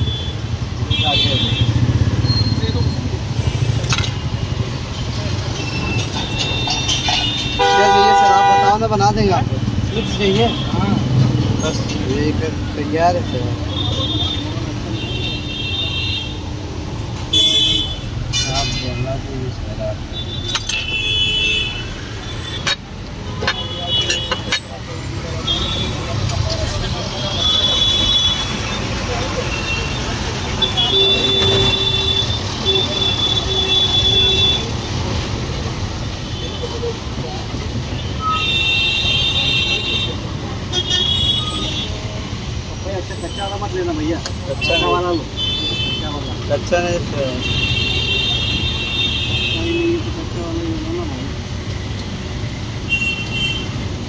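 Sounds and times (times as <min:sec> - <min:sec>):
road traffic: 0:00.0 - 0:54.0
vehicle horn toots: 0:06.3 - 0:08.8.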